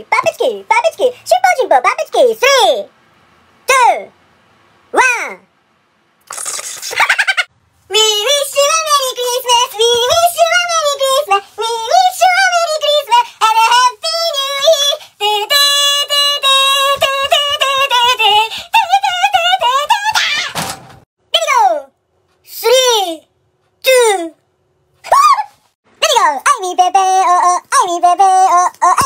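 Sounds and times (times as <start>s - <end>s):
synthetic high singing voice: 7.9s - 20.6s, 26.0s - 29.0s.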